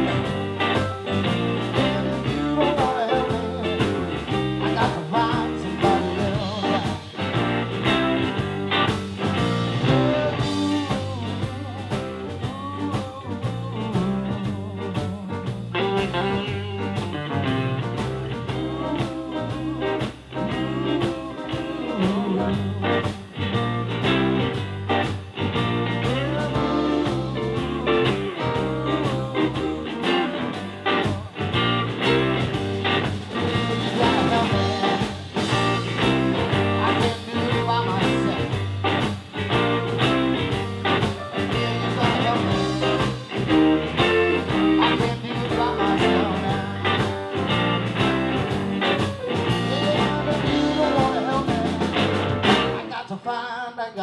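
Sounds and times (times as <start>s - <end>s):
live blues band playing: 0.0s - 53.0s.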